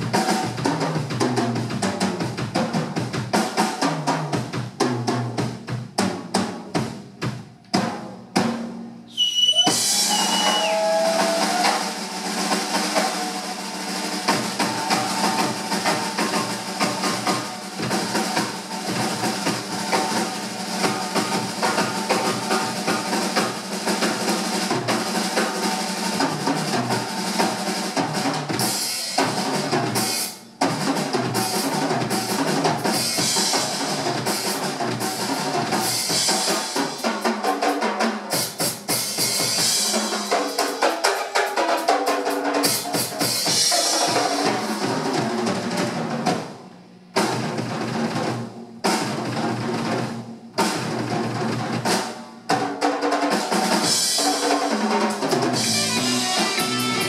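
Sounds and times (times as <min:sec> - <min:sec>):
drum kit solo: 0:00.0 - 0:57.0
cymbals ringing: 0:55.6 - 0:57.0.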